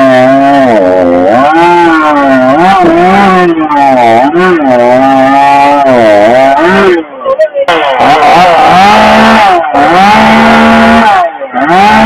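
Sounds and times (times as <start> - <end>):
chainsaw cutting through log: 0.0 - 7.1, 7.7 - 12.0.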